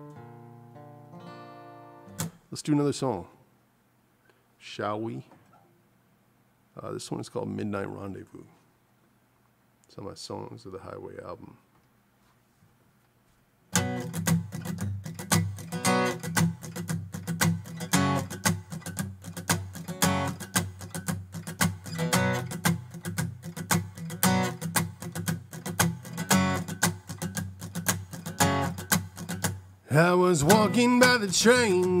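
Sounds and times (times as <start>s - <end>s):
acoustic guitar strumming: 0.0s - 2.5s, 13.7s - 32.0s.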